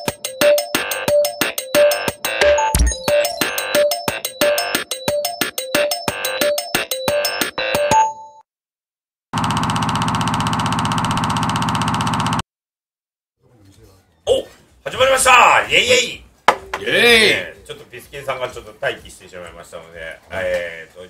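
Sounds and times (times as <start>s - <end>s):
electronic music jingle: 0.0s - 8.0s
people talking: 13.5s - 21.0s.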